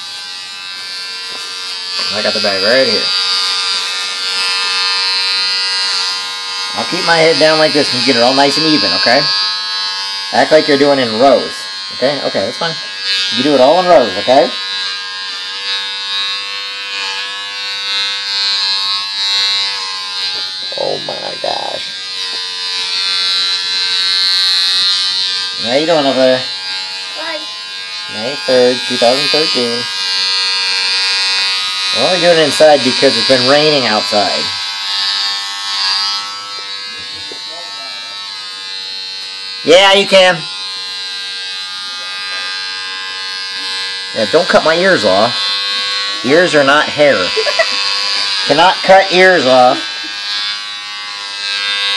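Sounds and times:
electric hair clippers buzzing: 0.0s - 51.9s.

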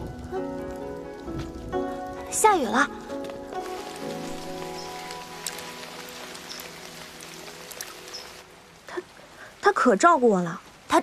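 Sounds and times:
music of long held notes: 0.0s - 8.8s
rain falling: 0.0s - 11.0s.

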